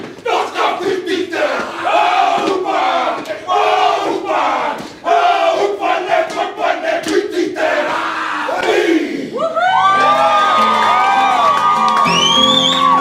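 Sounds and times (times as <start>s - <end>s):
men shouting a chant together: 0.2s - 9.4s
sharp hand slaps: 6.2s - 7.3s, 8.5s - 8.8s.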